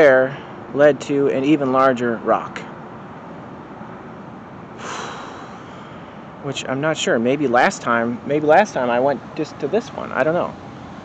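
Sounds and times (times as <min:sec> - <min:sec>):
steady background noise: 0:00.0 - 0:11.0
man drawing a breath: 0:04.8 - 0:06.4.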